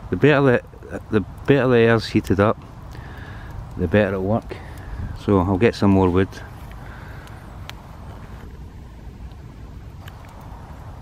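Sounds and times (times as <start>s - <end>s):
wind rumble on microphone: 0.0s - 11.0s
wood fire crackling: 0.0s - 11.0s.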